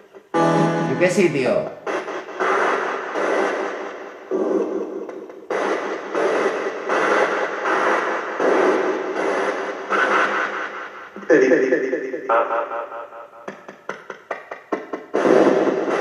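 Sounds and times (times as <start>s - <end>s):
radio scanning through stations: 0.8s - 3.7s.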